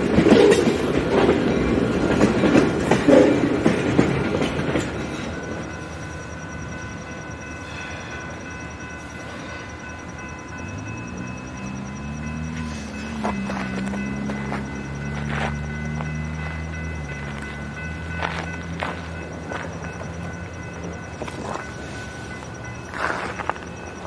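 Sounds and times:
freight train wheels clacking: 0.0s - 24.0s
thin high steady tones: 4.2s - 24.0s.

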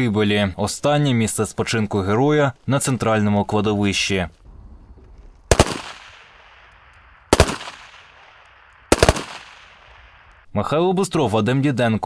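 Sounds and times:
rifle volleys with echo: 5.5s - 10.4s.

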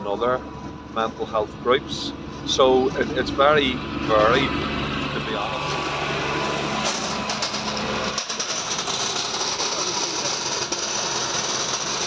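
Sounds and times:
vehicle engine hum: 0.0s - 12.0s.

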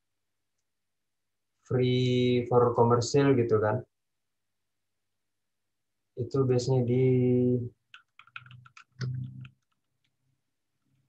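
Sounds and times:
typing on computer keyboard: 7.9s - 10.2s.

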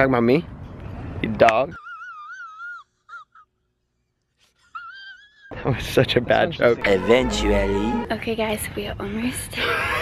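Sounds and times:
man's falsetto whine: 6.8s - 8.1s.

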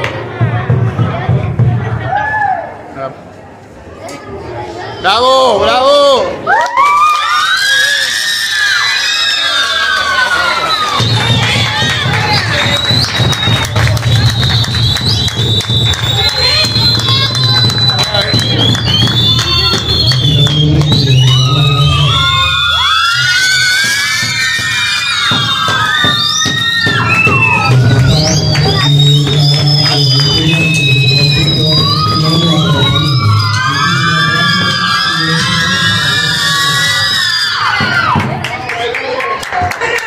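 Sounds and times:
bass drum beats: 0.0s - 2.2s, 10.9s - 38.5s
children cheering and shouting: 6.4s - 14.3s, 16.0s - 18.3s, 21.2s - 40.0s.

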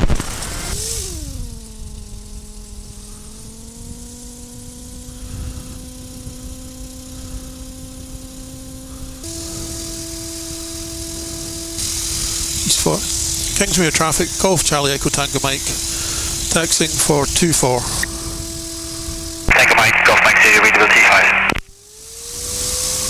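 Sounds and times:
microlight engine running: 0.2s - 23.0s
rushing noise: 19.5s - 21.7s.

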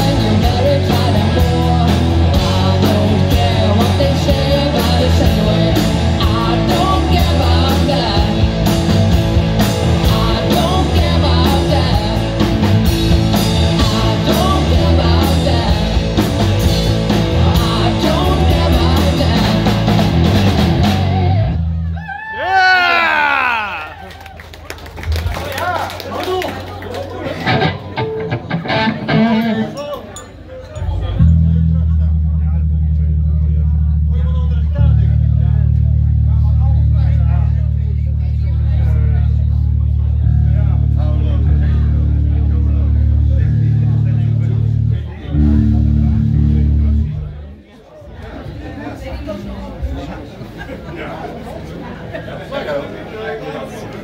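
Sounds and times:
live rock band playing: 0.0s - 21.9s, 25.9s - 34.1s, 38.8s - 47.3s
low bass notes through amplifiers: 0.0s - 22.0s, 27.4s - 29.8s, 30.8s - 47.5s
swooping guitar notes: 27.2s - 37.2s, 38.8s - 47.4s.

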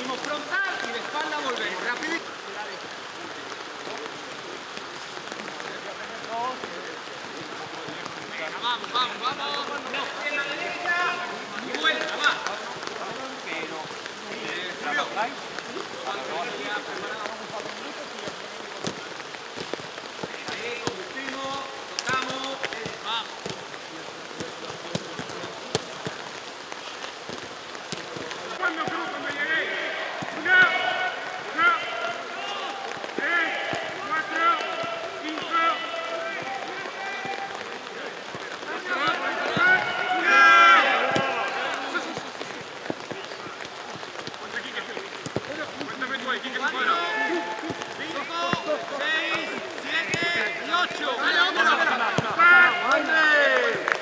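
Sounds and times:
rain falling: 0.0s - 54.0s
voices shouting: 28.5s - 42.6s, 45.9s - 54.0s.

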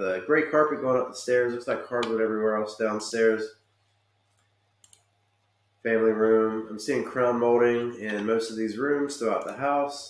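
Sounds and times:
computer mouse clicks: 4.3s - 5.5s.

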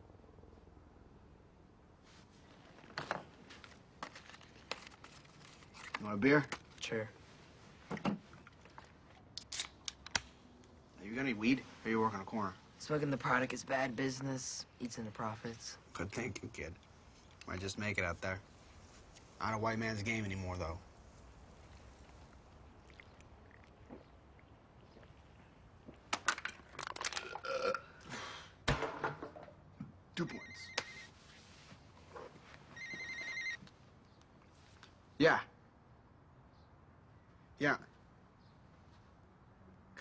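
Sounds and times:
person burping: 27.2s - 28.0s
can landing on wooden floor: 28.7s - 29.6s.

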